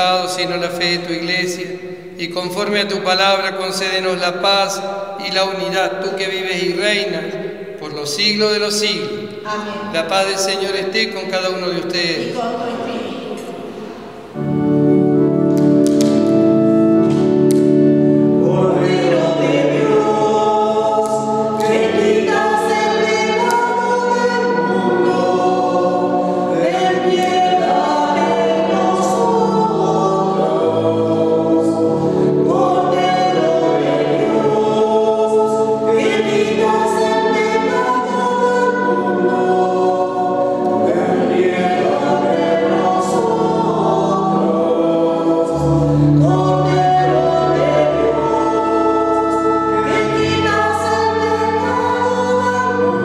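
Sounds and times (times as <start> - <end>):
choir singing a hymn: 0.0 - 53.0
organ chords: 0.0 - 53.0.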